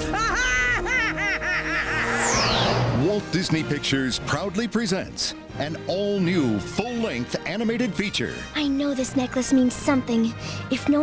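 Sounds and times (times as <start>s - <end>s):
woman laughing: 0.0s - 2.1s
orchestral film music: 0.0s - 11.0s
high falling whoosh: 1.8s - 3.4s.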